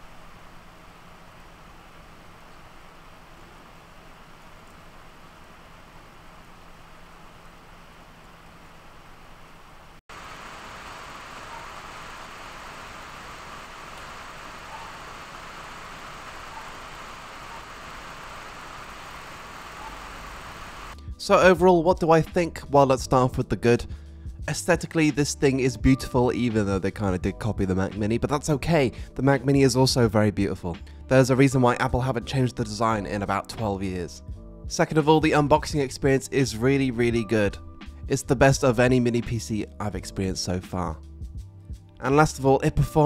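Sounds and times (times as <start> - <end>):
computer cooling fan rushing: 0.0 - 21.0.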